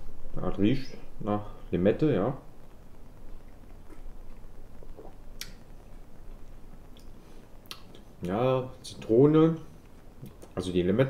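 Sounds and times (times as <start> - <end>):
lip and tongue smacks: 3.8 - 5.6, 7.0 - 8.0
man sipping a drink: 3.9 - 5.6.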